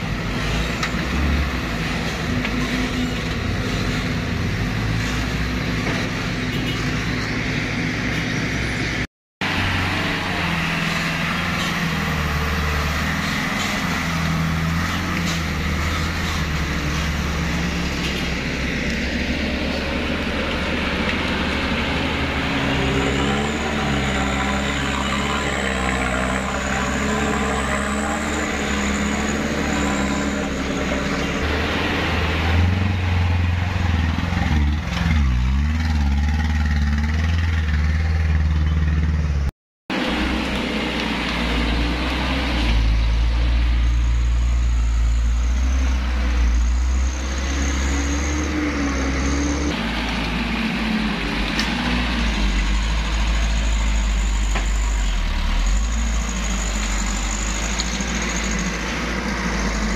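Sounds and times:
truck engines revving: 0.0s - 59.9s.

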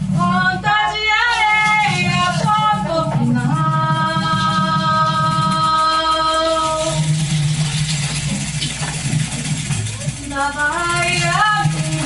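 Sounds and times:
light percussion: 0.0s - 12.0s.

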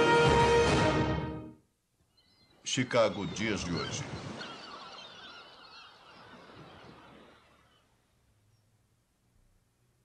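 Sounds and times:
faint bird calls: 2.0s - 8.8s.

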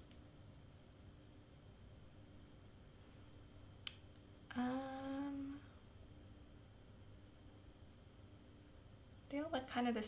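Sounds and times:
woman humming: 4.5s - 5.8s.

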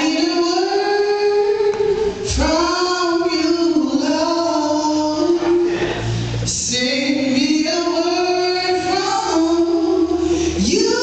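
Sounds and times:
woman singing gospel song: 0.0s - 11.0s.

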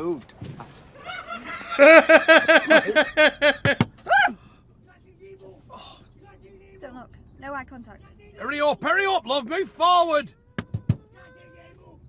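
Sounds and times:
man laughing: 1.0s - 4.3s
faint breathing: 4.3s - 4.8s, 5.6s - 6.2s.

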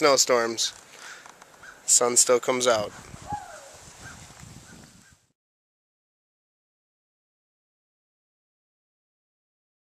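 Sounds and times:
faint distant bird calls: 0.8s - 2.2s, 2.8s - 5.3s.

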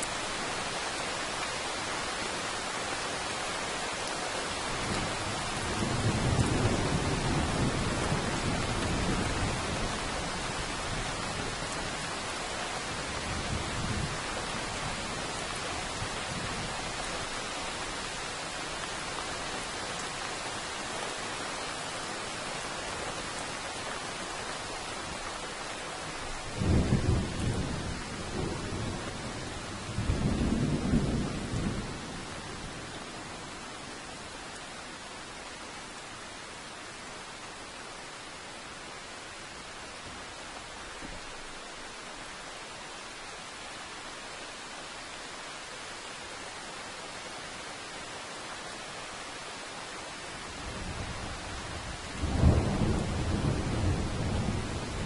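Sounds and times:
steady rain: 0.0s - 55.0s
thunder rumbling: 50.7s - 55.0s.

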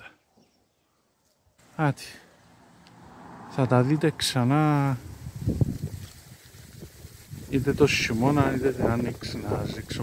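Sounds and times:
wind buffeting microphone: 4.0s - 10.0s.

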